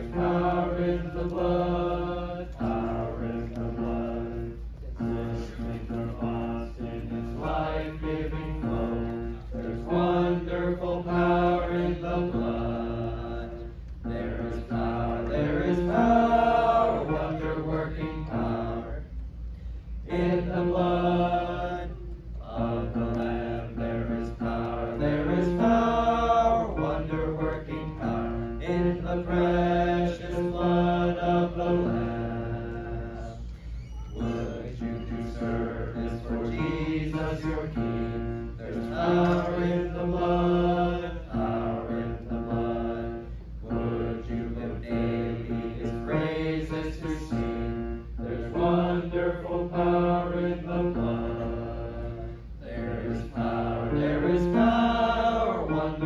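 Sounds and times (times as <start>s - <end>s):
group singing a hymn: 0.0s - 19.2s, 20.0s - 33.6s, 34.2s - 56.0s.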